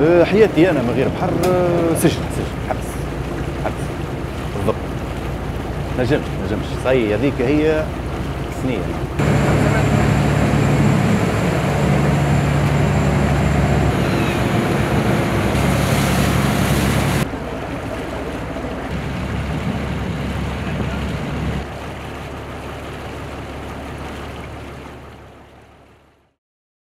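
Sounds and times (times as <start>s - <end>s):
boat engine humming: 0.0s - 26.3s
sea water noise: 0.0s - 26.4s
wind: 0.0s - 26.4s.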